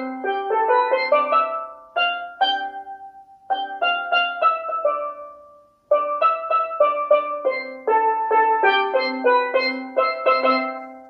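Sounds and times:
steel pan melody: 0:00.0 - 0:11.0.

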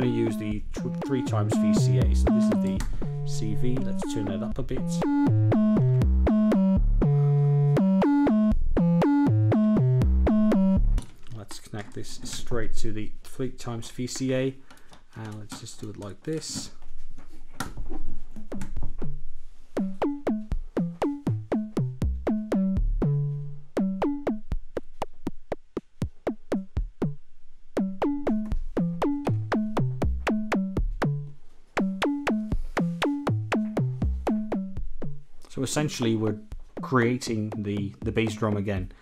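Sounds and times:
synthesized bass drum hits: 0:02.0 - 0:04.1.

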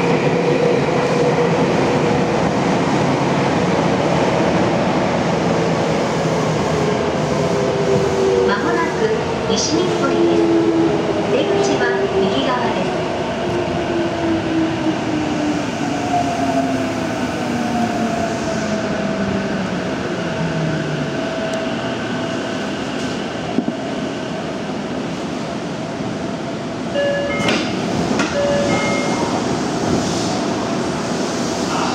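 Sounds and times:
train running noise: 0:00.0 - 0:31.9
short beeping tones: 0:28.4 - 0:29.3.

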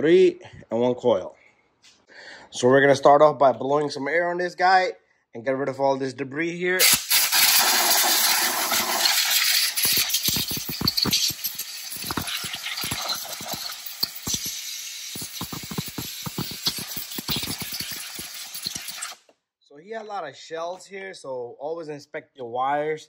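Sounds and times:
air blow gun hissing: 0:06.8 - 0:19.2.

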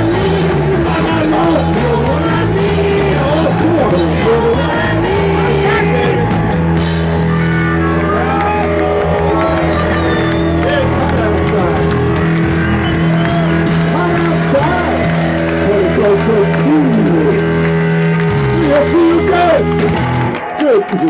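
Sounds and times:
person singing: 0:00.0 - 0:06.4, 0:13.9 - 0:17.4
garage rock band playing: 0:00.0 - 0:21.0.

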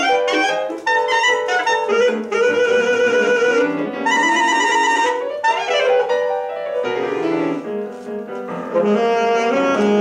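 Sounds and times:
alto saxophone playing: 0:00.0 - 0:07.7, 0:08.6 - 0:10.0
piano accompaniment: 0:00.0 - 0:10.0.

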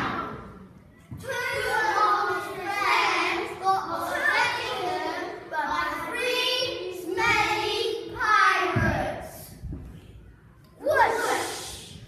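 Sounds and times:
children chanting in unison: 0:01.2 - 0:09.6, 0:10.8 - 0:12.0.

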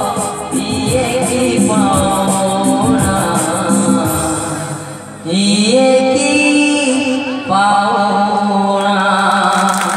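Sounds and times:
backing music: 0:00.0 - 0:07.8
man singing into a microphone: 0:00.0 - 0:09.9.

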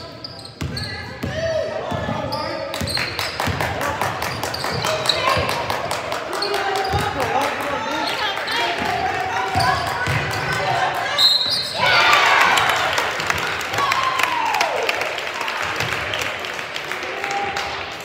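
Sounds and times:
voices of players and spectators: 0:00.0 - 0:18.0
basketball bouncing: 0:08.8 - 0:10.8.

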